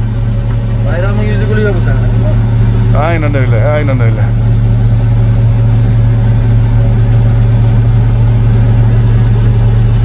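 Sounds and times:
diesel engines droning: 0.0s - 10.0s.

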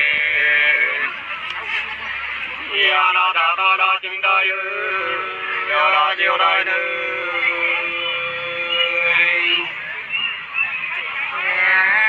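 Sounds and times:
voices singing folk song: 0.0s - 12.0s.

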